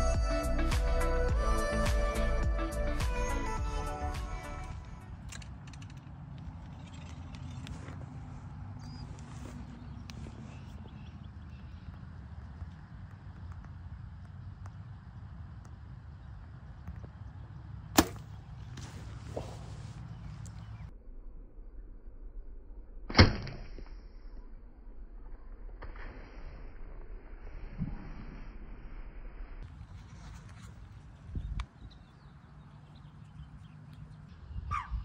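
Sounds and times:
background music: 0.0 - 5.0
low outdoor rumble: 0.0 - 35.0
bow shot crack: 17.9 - 18.4, 23.1 - 24.0.

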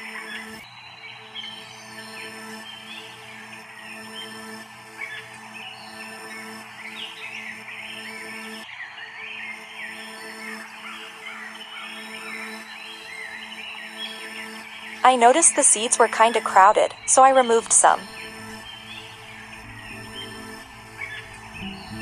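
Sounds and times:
bird song chirping: 0.0 - 22.0
held musical drone: 0.0 - 22.0.

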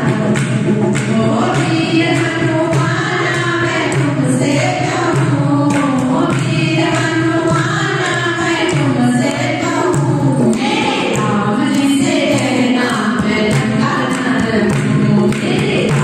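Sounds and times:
hand drum beat: 0.0 - 16.0
women singing in unison: 0.0 - 16.0
hand claps: 5.1 - 16.0.

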